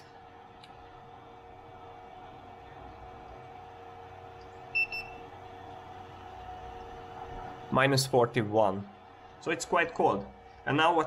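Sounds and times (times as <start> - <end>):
equipment hum with constant tones: 0.0 - 11.0.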